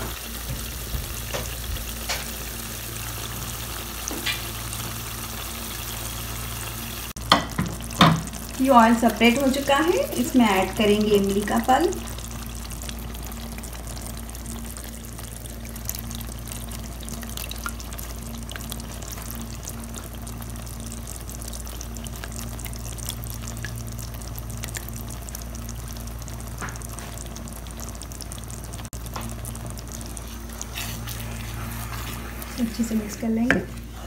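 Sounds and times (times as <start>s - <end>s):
sizzling and crackling in oil: 0.0s - 34.0s
steady low hum: 0.0s - 34.0s.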